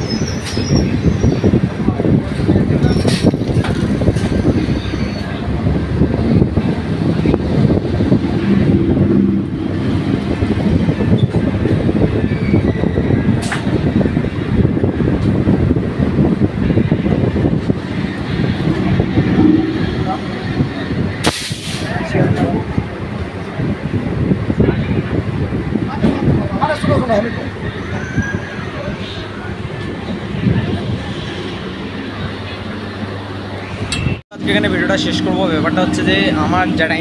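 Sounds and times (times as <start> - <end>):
air rushing past: 5.8 - 12.2, 15.5 - 22.2.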